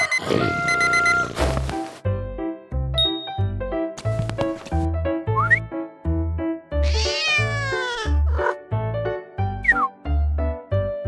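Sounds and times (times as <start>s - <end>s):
alarm clock beeping: 0.0s - 1.2s
children's music: 2.9s - 11.0s.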